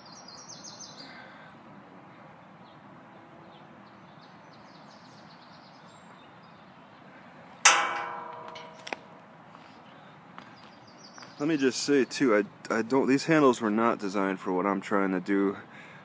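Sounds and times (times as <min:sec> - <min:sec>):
metal ring clanging on steel frame: 0:07.7 - 0:09.3.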